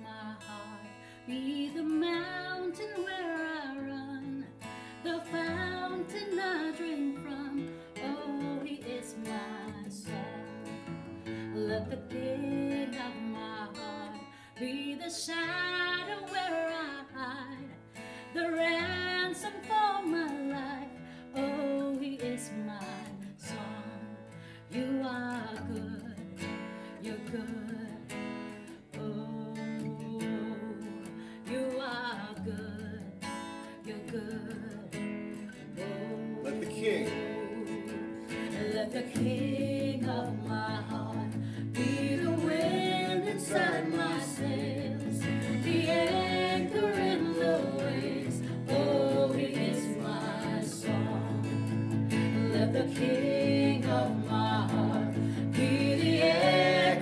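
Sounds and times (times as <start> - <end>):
acoustic guitars strummed: 0.0 - 57.0
group singing worship song: 35.5 - 57.0.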